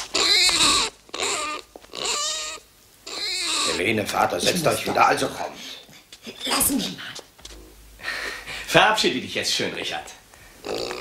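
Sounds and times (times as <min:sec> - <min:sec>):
animal high-pitched calls: 0:00.0 - 0:03.8, 0:10.6 - 0:11.0.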